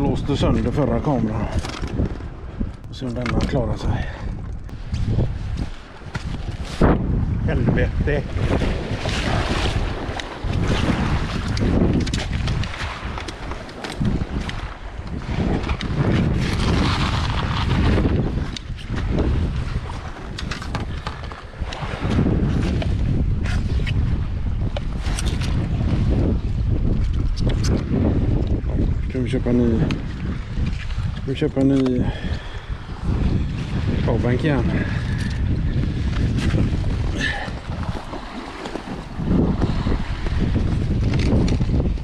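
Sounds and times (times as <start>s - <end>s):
strong gusty wind on microphone: 0.0s - 42.0s.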